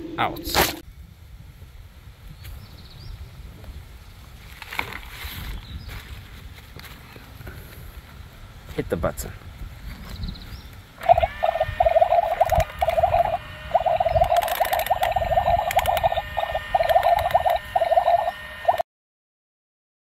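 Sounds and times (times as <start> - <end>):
frogs croaking in chorus: 11.0 - 18.8.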